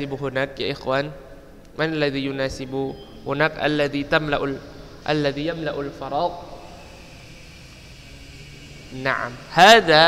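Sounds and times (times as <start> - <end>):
low background hum and hiss: 0.0 - 10.0.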